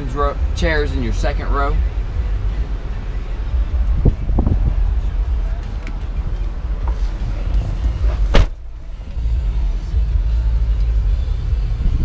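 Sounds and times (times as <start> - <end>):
car engine idling: 0.0 - 12.0
sharp knock: 8.3 - 8.6.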